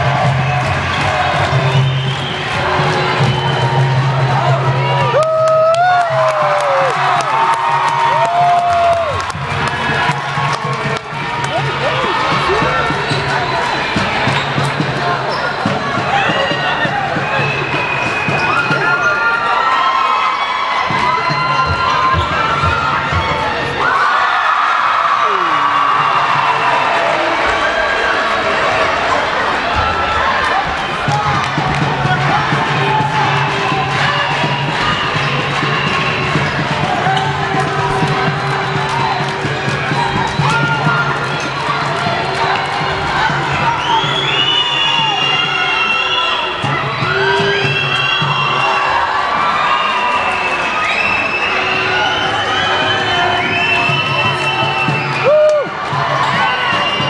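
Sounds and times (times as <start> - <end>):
crowd chatter: 0.0 - 57.0
music over the hall: 0.0 - 57.0.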